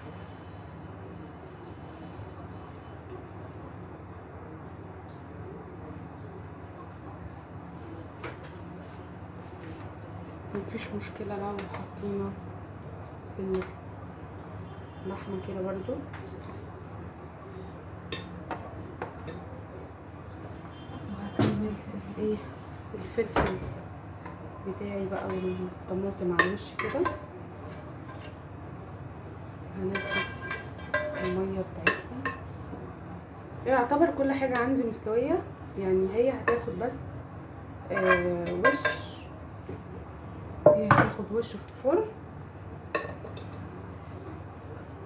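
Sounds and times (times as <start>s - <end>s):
low kitchen hum: 0.0s - 45.0s
woman speaking: 10.5s - 12.4s, 13.2s - 13.7s, 15.1s - 16.1s, 21.1s - 23.8s, 24.6s - 27.1s, 29.7s - 30.3s, 31.2s - 32.2s, 33.6s - 37.1s, 37.9s - 39.4s, 40.6s - 42.2s.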